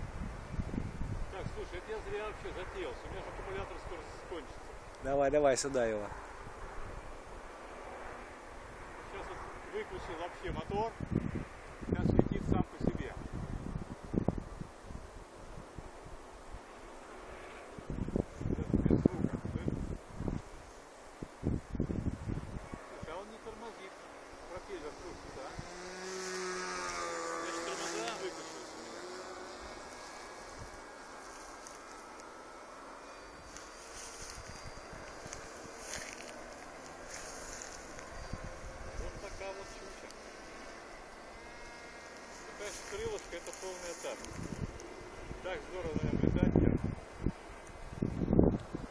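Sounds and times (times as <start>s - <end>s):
model plane electric motor buzzing: 0.0s - 48.9s
wind rumbling on microphone: 0.0s - 48.9s.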